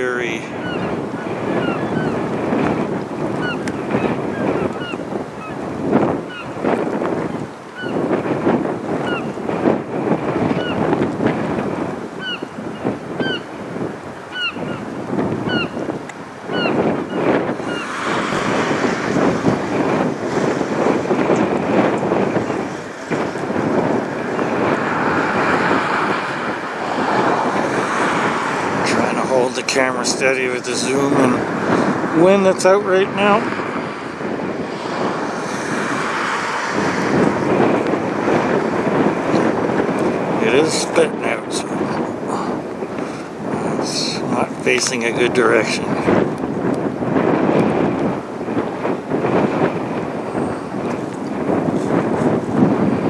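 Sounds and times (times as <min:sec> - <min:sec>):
wind buffeting microphone: 0:00.0 - 0:53.0
geese honking: 0:00.6 - 0:02.2, 0:14.3 - 0:15.8.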